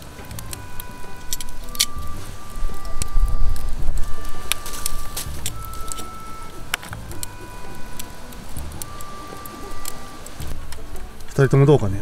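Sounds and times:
beef sizzling on a grill: 0.0s - 12.0s
soft background music: 0.0s - 12.0s
wood fire crackling and popping: 0.0s - 12.0s.

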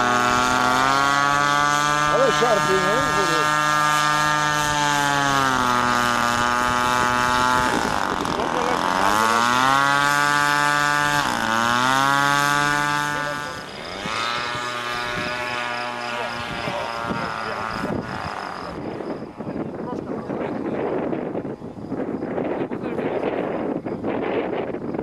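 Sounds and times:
model plane engine droning: 0.0s - 25.0s.

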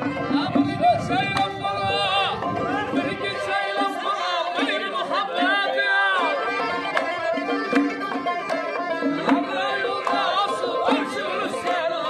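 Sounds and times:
accordion: 0.0s - 12.0s
folk music: 0.0s - 12.0s
person singing ornamented lines: 0.0s - 12.0s.

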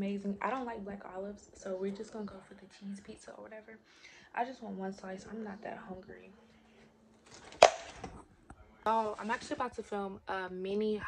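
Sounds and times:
sharp crack: 7.5s - 8.1s.

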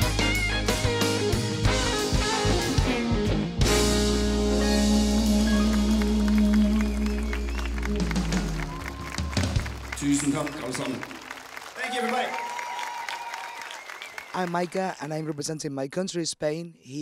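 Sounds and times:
applause: 5.5s - 15.6s.

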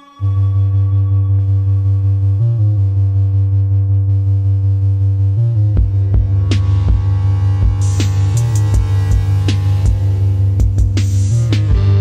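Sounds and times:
pulsing synthesizer music: 0.0s - 12.0s.

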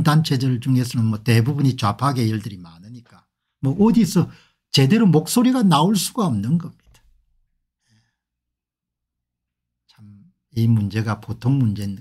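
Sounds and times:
man saying a short word softly: 9.9s - 10.3s.

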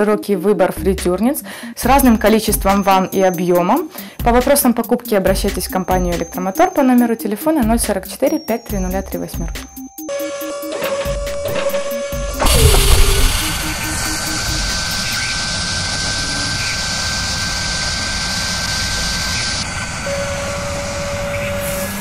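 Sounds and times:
short steady tone: 11.8s - 15.3s
heavy hit with falling tone: 12.4s - 15.6s
high whirring hiss with whine: 12.4s - 22.0s.

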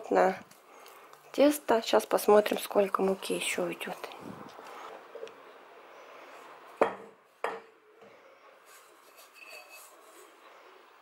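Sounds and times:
glass bowl knocking on countertop: 6.8s - 7.7s.

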